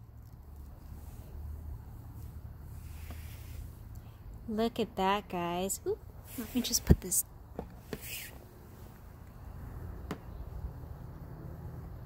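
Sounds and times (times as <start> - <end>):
brief hiss: 7.9 - 8.4.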